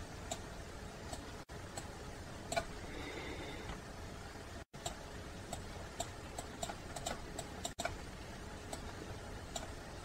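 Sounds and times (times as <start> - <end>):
faint steady hiss: 0.0 - 10.0
computer mouse clicks: 2.5 - 2.7, 4.8 - 8.0, 9.5 - 9.8.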